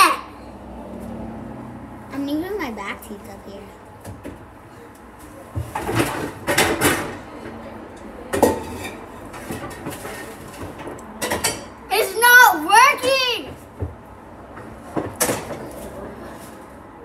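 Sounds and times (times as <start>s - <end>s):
plastic cups clattering and rustling: 8.4s - 11.5s.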